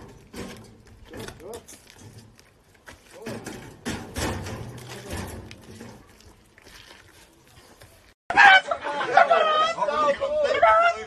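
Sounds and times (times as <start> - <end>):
knocks and clatters: 0.0 - 6.4
men's voices: 8.5 - 11.0.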